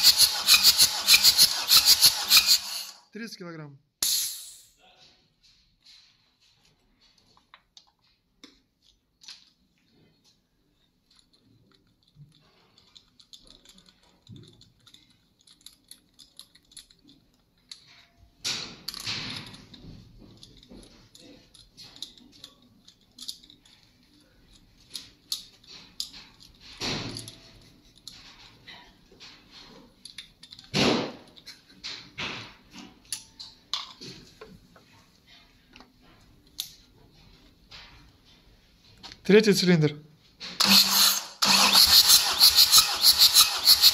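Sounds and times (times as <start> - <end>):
tools clinking against metal: 10.8 - 34.2.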